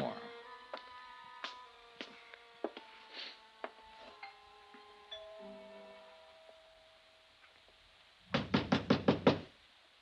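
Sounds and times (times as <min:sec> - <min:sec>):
knocking on wooden door: 0:08.3 - 0:09.5.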